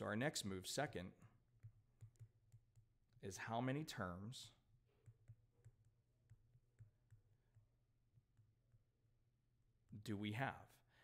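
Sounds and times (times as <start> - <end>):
stylus tapping on tablet screen: 1.4 - 3.2, 4.6 - 9.2.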